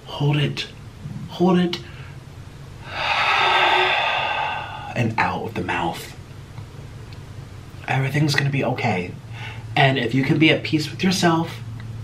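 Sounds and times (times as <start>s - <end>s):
man breathing out through mouth: 2.8s - 5.0s.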